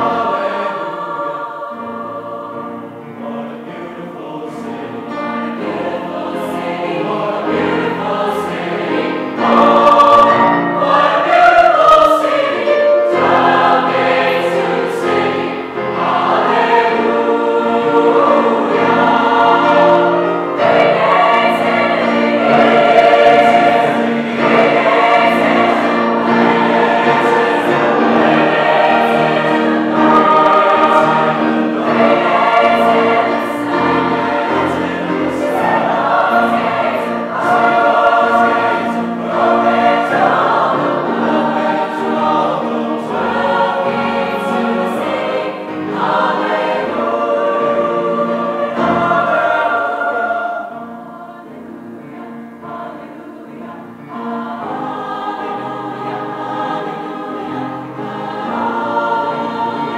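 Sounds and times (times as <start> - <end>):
mixed choir singing in parts: 0.0 - 59.9.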